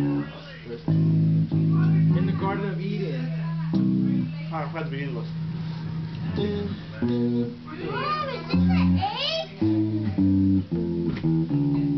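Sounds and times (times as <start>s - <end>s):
electric bass guitar notes: 0.0s - 11.9s.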